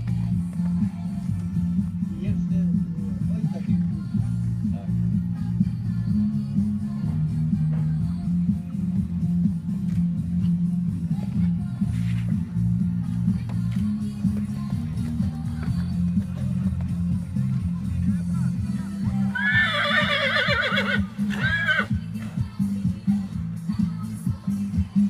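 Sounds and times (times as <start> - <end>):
background music: 0.0 - 25.0
horse neighing: 19.3 - 22.0.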